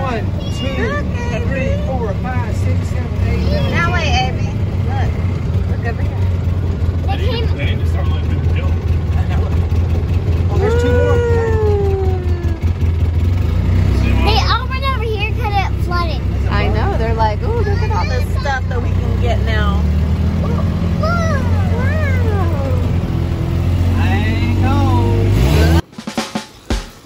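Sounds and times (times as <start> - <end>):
people talking: 0.0 - 6.4, 7.0 - 9.8, 10.4 - 12.6, 13.9 - 23.1, 23.9 - 25.8
utility vehicle engine humming: 0.0 - 25.9
long falling vocal call: 10.6 - 13.0.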